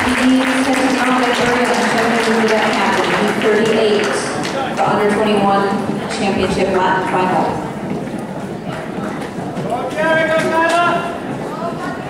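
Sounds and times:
spectators' voices in a hall: 0:00.0 - 0:12.0.

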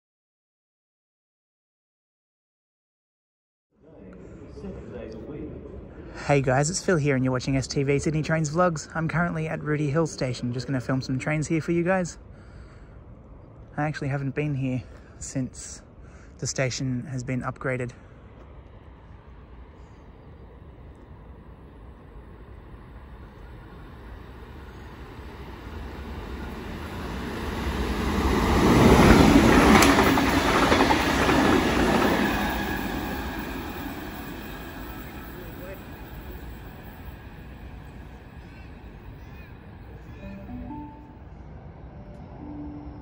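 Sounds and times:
train wheels rumbling on rails: 0:18.2 - 0:40.2.

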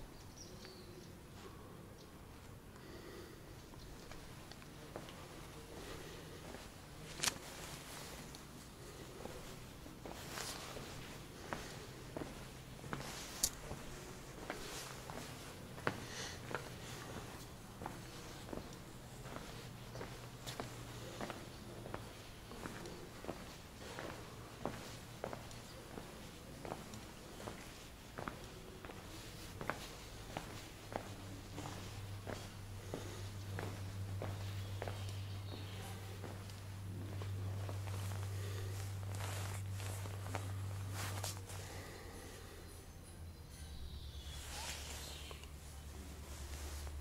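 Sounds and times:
steady low hum: 0:00.0 - 0:47.0
footsteps on stone paving: 0:04.0 - 0:42.0.

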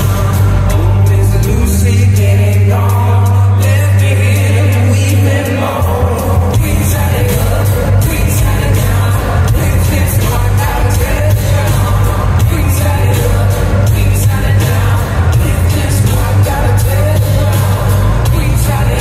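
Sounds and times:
heavy bass line: 0:00.0 - 0:19.0
voices singing: 0:00.0 - 0:19.0
drum beat: 0:05.8 - 0:19.0.

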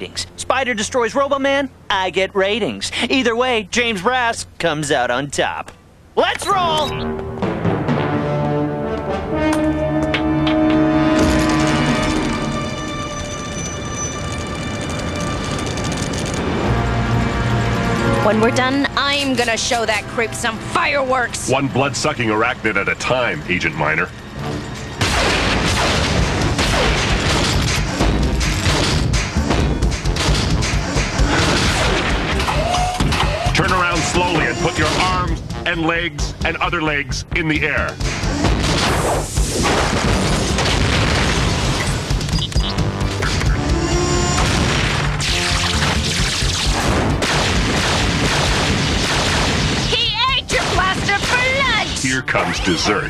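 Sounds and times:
action music: 0:06.4 - 0:53.0
falling whines: 0:09.4 - 0:18.0, 0:31.1 - 0:35.3, 0:41.9 - 0:46.9
battle booms and blasts: 0:25.0 - 0:33.6, 0:38.1 - 0:42.3, 0:44.3 - 0:52.0
dense crashing noise: 0:38.0 - 0:42.3, 0:44.2 - 0:45.5.

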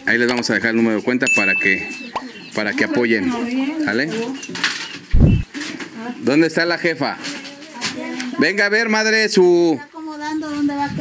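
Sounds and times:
short low thump: 0:05.1 - 0:05.5.

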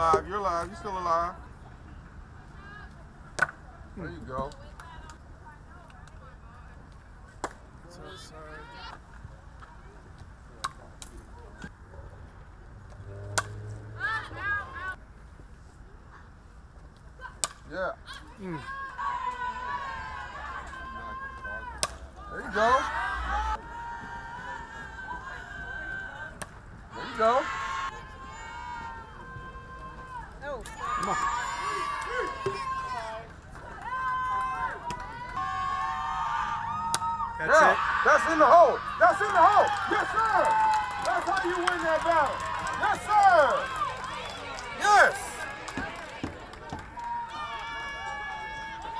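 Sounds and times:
spectators shouting: 0:18.1 - 0:26.3, 0:26.9 - 0:48.9.

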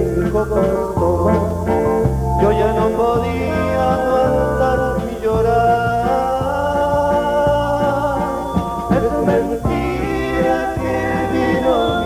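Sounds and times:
live band music: 0:00.0 - 0:12.0
man singing: 0:00.0 - 0:12.0
steady bass line: 0:00.0 - 0:12.0.

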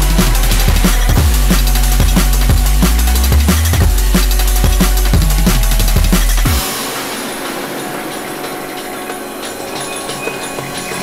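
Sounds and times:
hissy synth texture: 0:00.0 - 0:11.0.

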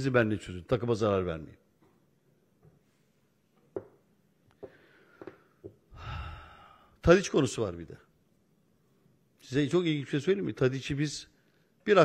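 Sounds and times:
man sighing: 0:05.9 - 0:07.0.

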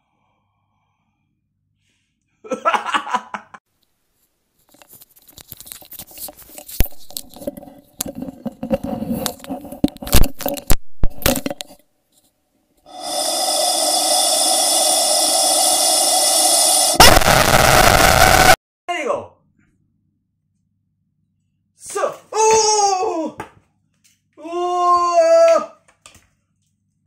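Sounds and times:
cord scraping through rubber toy: 0:05.9 - 0:10.4.

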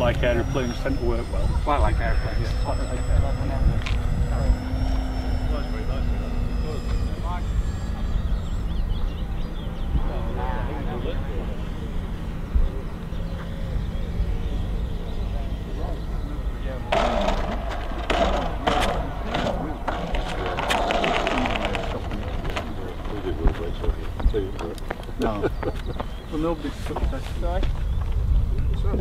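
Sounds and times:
model airplane rattling scraping roll: 0:00.0 - 0:25.1
wind rumble on microphone: 0:00.0 - 0:29.0.

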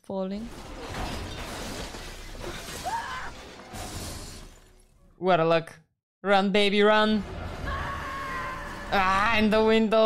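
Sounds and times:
debris crashing and shattering: 0:00.5 - 0:05.0
film score music: 0:06.5 - 0:10.0.

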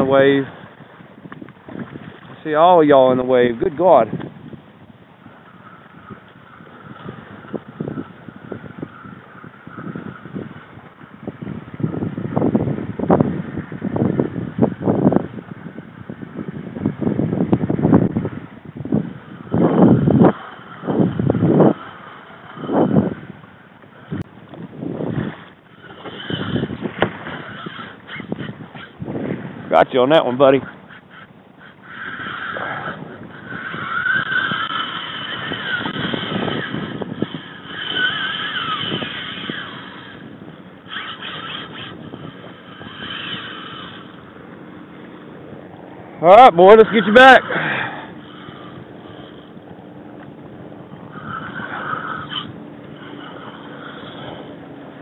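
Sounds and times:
fishing reel drag squealing: 0:00.0 - 0:00.9, 0:05.2 - 0:12.0, 0:19.0 - 0:24.3, 0:25.0 - 0:29.0, 0:29.6 - 0:45.5, 0:46.2 - 0:55.0
wind buffeting microphone: 0:00.0 - 0:55.0
water slapping against kayak hull: 0:00.6 - 0:02.4, 0:24.5 - 0:27.5.

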